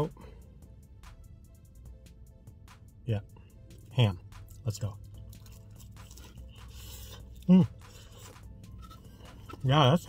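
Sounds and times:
faint background music: 0.0 - 10.0
man chewing food: 4.4 - 9.7.

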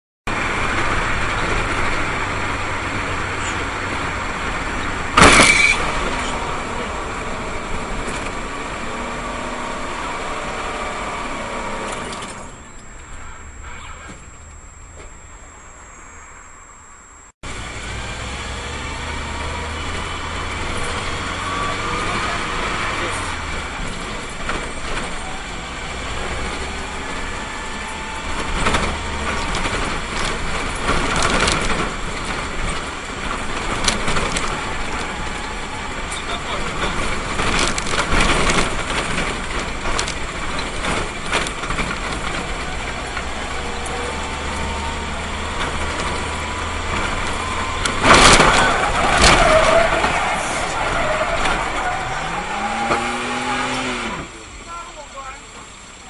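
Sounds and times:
vehicle engine and road noise: 0.3 - 56.0.

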